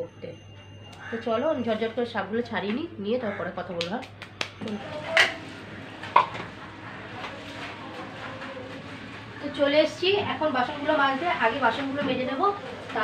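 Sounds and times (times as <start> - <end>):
woman talking: 1.0 - 5.4, 9.4 - 13.0.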